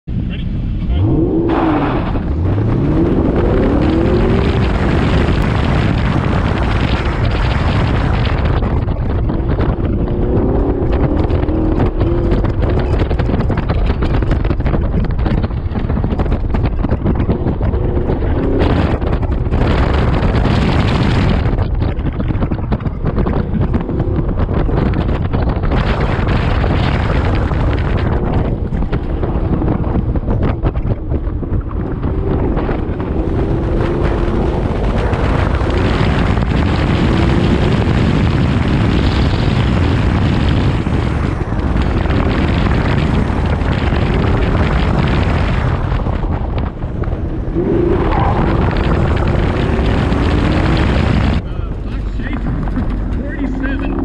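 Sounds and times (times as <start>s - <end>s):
wind noise on microphone: 0.1s - 54.0s
car engine revving: 0.2s - 54.0s.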